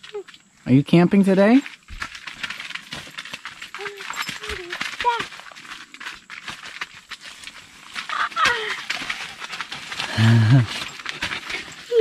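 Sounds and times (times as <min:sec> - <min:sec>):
rustling on nylon tent floor: 0:00.0 - 0:12.0.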